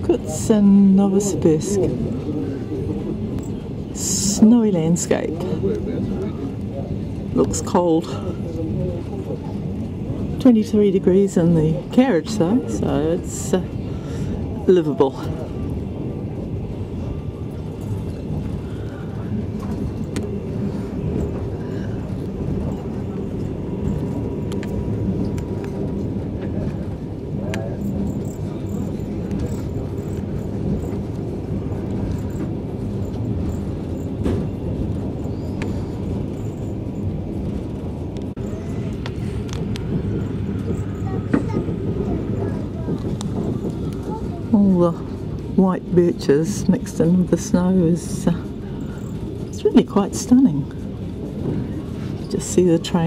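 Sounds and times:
train wheels rumbling on rails: 0:00.0 - 0:53.0
faint clicks: 0:42.9 - 0:44.1.

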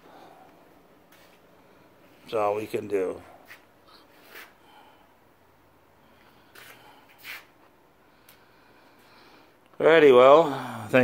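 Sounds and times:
soft rustling: 0:01.0 - 0:02.5, 0:03.2 - 0:04.6.

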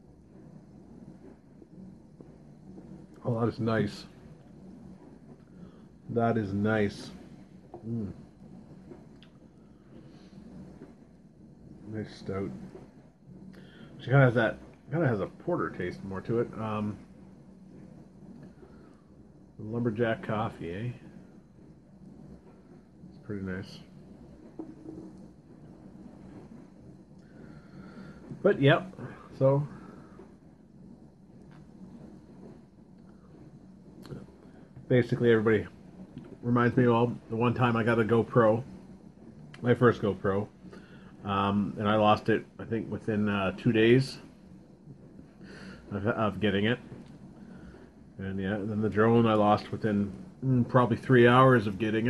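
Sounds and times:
low room rumble: 0:00.0 - 0:52.0.

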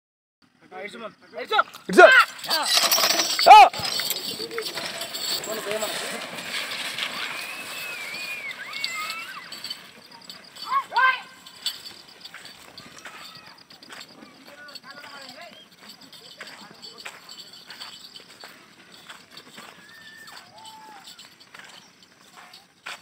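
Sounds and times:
hooves on dirt: 0:03.1 - 0:23.0
men shouting: 0:03.4 - 0:04.8
running feet on dirt: 0:03.8 - 0:23.0.

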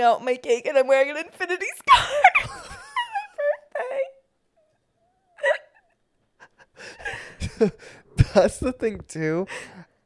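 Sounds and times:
person laughing: 0:01.9 - 0:04.2, 0:06.4 - 0:08.8
person breathing: 0:06.6 - 0:08.2, 0:09.5 - 0:10.0.

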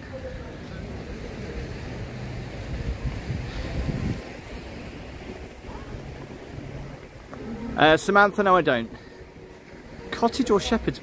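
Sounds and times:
sea surf rumbling: 0:00.0 - 0:11.0.

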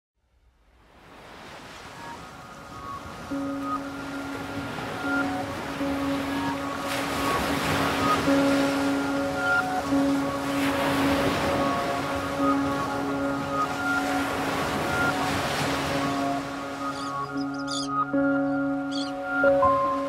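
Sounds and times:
ocean surf washing in: 0:00.6 - 0:20.0
music with long held notes: 0:02.4 - 0:20.0.

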